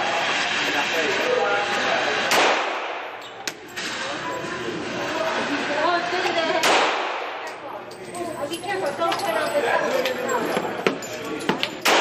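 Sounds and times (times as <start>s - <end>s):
faint gunshot crack: 2.3s - 3.1s
handgun shot indoors: 2.3s - 3.2s, 6.6s - 7.6s, 11.8s - 12.0s.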